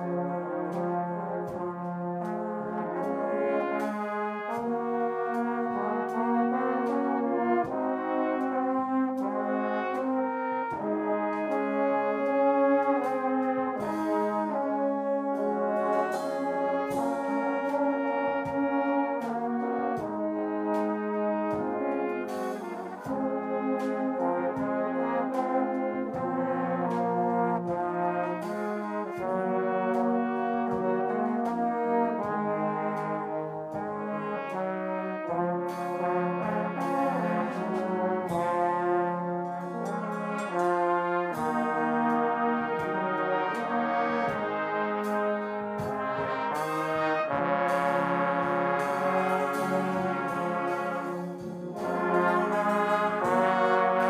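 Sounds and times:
brass band playing a hymn: 0:00.0 - 0:54.0
drum and cymbal strikes: 0:00.0 - 0:54.0.

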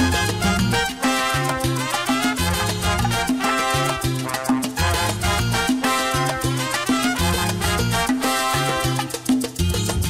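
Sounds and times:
instrumental salsa dance music: 0:00.0 - 0:10.0.

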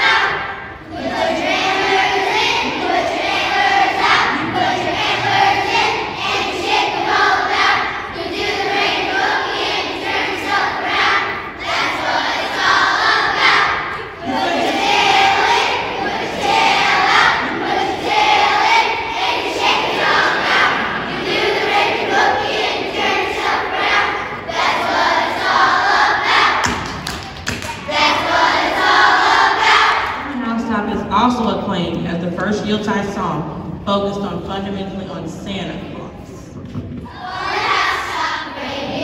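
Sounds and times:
children singing in unison: 0:00.0 - 0:30.3, 0:37.0 - 0:39.0.

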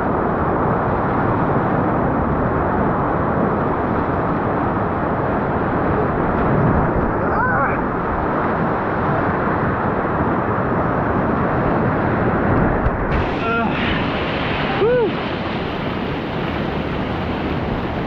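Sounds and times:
whitewater rushing: 0:02.8 - 0:18.0
water splashing against hull: 0:11.6 - 0:18.0.

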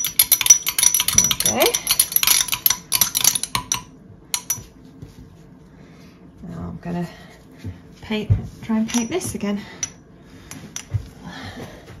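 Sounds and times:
metal spoon clinking in glass jar: 0:00.0 - 0:04.7, 0:08.9 - 0:09.2.

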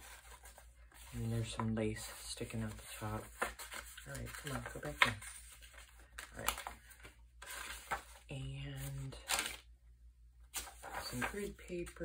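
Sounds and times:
paper page rustling: 0:00.0 - 0:09.6, 0:10.5 - 0:12.0.

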